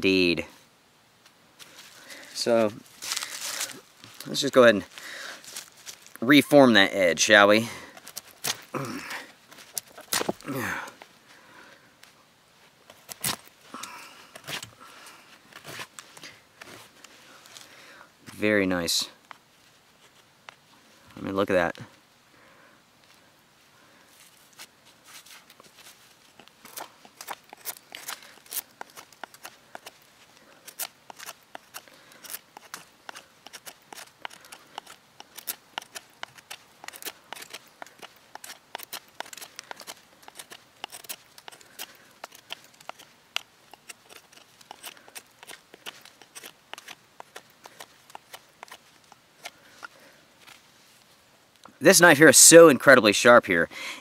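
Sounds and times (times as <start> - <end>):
knife carving a wooden stick: 7.9 - 10.6, 12.8 - 14.7, 24.5 - 50.6.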